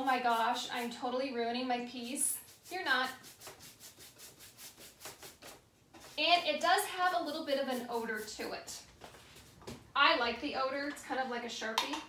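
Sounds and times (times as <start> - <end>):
wax brush scrubbing wood: 0.0 - 1.1, 1.9 - 8.6.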